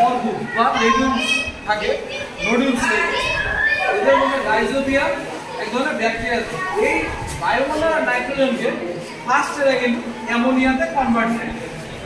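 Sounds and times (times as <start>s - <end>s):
man talking: 4.0s - 11.6s.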